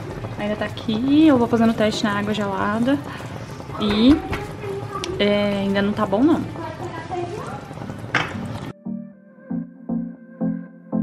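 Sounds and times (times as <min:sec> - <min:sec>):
syrup bubbling at a boil: 0:00.0 - 0:08.7
soft music with steady beat: 0:07.9 - 0:11.0.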